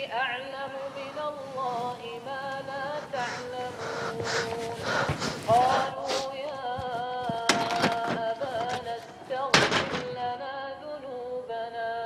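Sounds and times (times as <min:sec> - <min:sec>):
man chanting recitation: 0:00.0 - 0:12.0
person gasping: 0:02.9 - 0:06.4.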